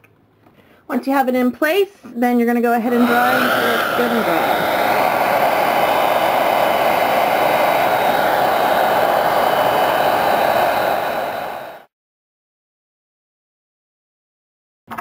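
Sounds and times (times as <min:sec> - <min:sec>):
blow dryer blowing: 0:02.8 - 0:11.9.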